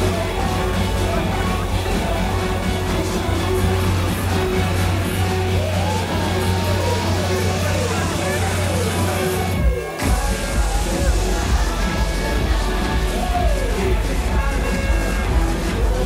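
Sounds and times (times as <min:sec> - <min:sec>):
live band playing dance music: 0:00.0 - 0:16.0.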